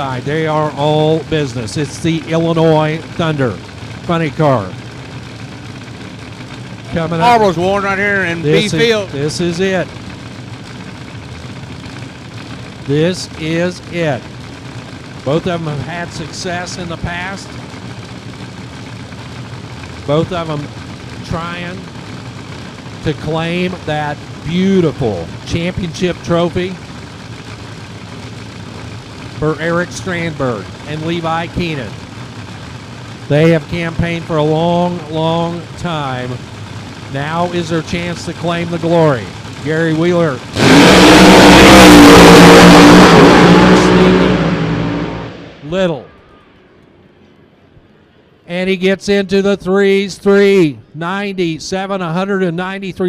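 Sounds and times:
drag-racing engines idling: 0:00.0 - 0:53.0.

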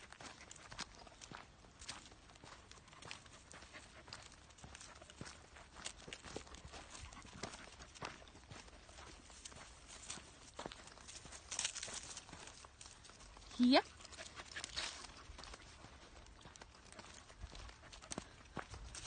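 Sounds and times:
footsteps on dry leaves: 0:00.0 - 0:19.0.

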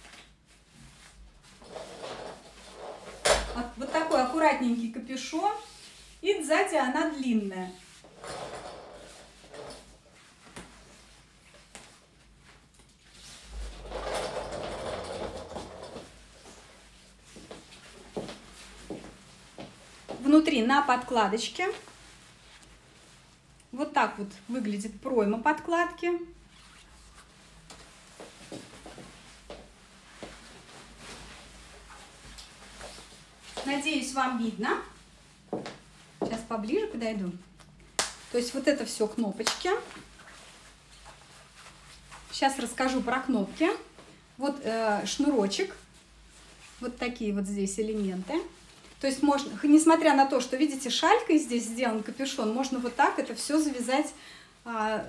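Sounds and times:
padded jacket fabric rustling: 0:00.0 - 0:04.8, 0:07.1 - 0:20.7, 0:21.6 - 0:23.6, 0:26.4 - 0:44.3, 0:44.9 - 0:49.7.

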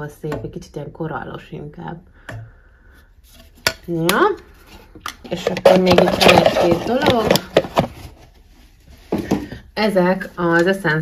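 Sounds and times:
makeup palette handling noise: 0:05.0 - 0:08.2
person speaking: 0:05.2 - 0:07.6.

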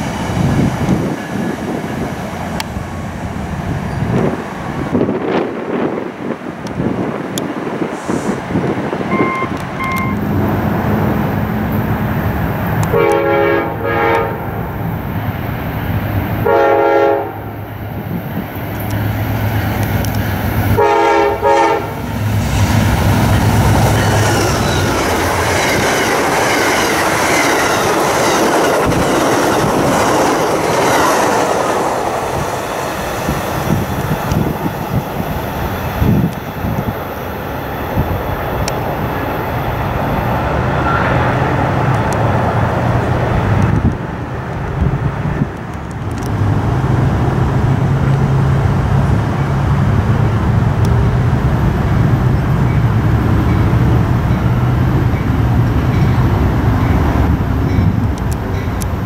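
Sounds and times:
train running on rails: 0:00.0 - 0:59.0
locomotive horn: 0:12.8 - 0:14.6, 0:16.4 - 0:17.5, 0:20.7 - 0:22.1.

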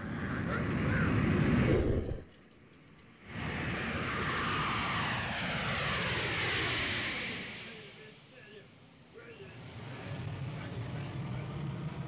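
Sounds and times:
loud rushing noise with sweeping tones: 0:00.0 - 0:02.3, 0:03.2 - 0:08.2.

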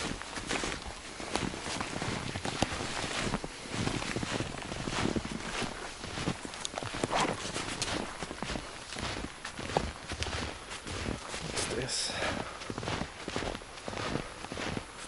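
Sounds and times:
footsteps in snow: 0:00.0 - 0:15.0.

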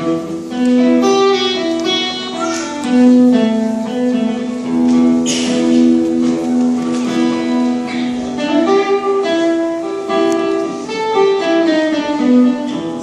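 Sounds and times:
acoustic guitar melody: 0:00.0 - 0:13.0.

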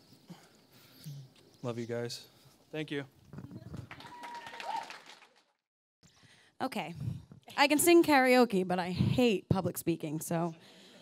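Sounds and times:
guests applauding: 0:03.6 - 0:05.6.

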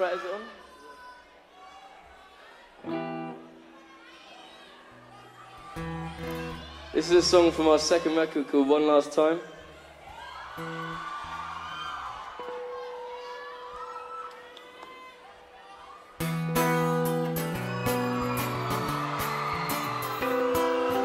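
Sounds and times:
strummed guitar chords: 0:16.2 - 0:21.0.

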